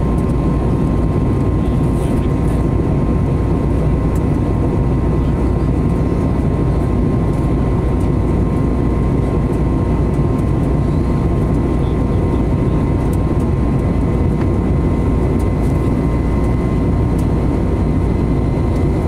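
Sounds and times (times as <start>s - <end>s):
airliner cabin rumble: 0.0s - 19.0s
steady thin whine: 8.1s - 19.0s.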